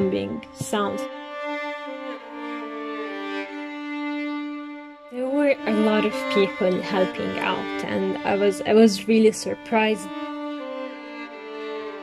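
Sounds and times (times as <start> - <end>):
slow bowed strings: 0.0 - 12.0.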